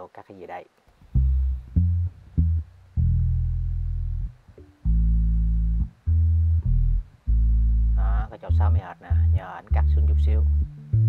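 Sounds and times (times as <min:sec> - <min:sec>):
low bass guitar notes: 0:01.0 - 0:11.0.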